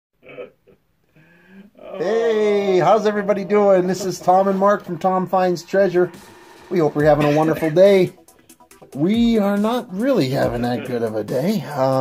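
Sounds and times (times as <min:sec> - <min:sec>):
man speaking: 0:01.8 - 0:08.2, 0:08.9 - 0:12.0.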